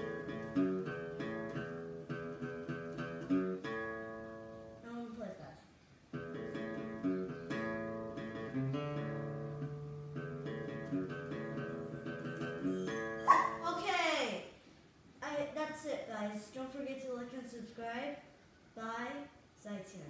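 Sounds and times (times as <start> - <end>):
acoustic guitar tune: 0.0 - 5.2, 6.1 - 14.3.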